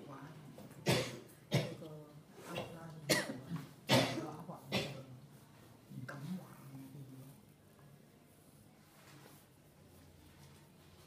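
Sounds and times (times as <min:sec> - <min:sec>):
person coughing: 0:00.9 - 0:01.8, 0:02.6 - 0:05.0.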